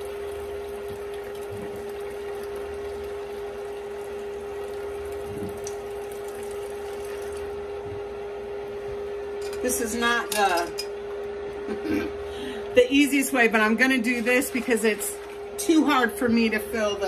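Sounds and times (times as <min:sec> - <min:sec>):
liquid pouring into a cup: 0:00.0 - 0:07.7
steady hum: 0:00.0 - 0:17.0.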